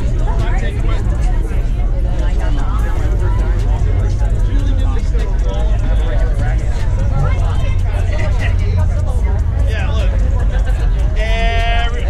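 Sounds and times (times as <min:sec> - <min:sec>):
indistinct crowd chatter: 0:00.0 - 0:12.0
steady low rumble: 0:00.0 - 0:12.0.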